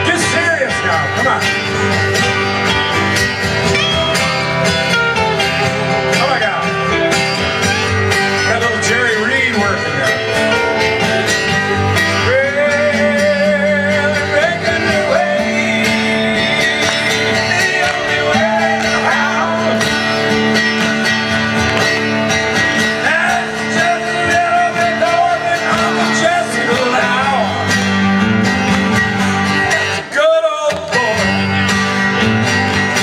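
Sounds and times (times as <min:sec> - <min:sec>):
drums: 0:00.0 - 0:33.0
electric guitar: 0:00.0 - 0:33.0
strummed acoustic guitar: 0:00.0 - 0:33.0
person singing: 0:11.7 - 0:20.2.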